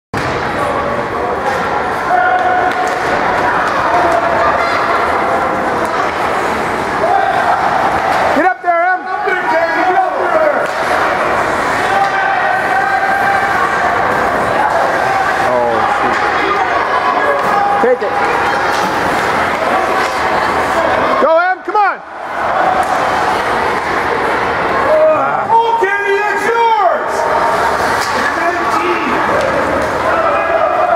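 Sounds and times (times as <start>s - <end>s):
spectators shouting and chatting: 0.2s - 30.9s.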